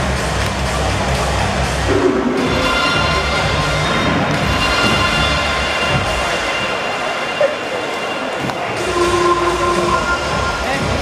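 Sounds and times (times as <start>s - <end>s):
crowd chatter: 0.0s - 11.0s
music over public address: 0.0s - 11.0s.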